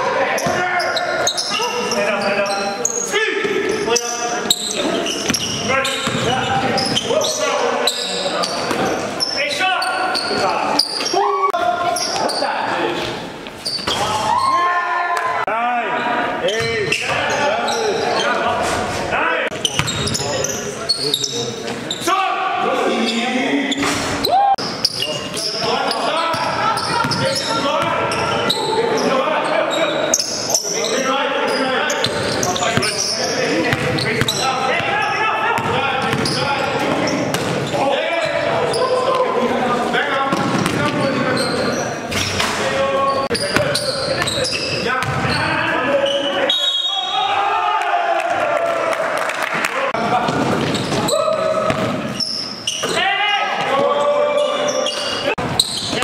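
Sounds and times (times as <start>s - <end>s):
players calling out: 0.0s - 56.0s.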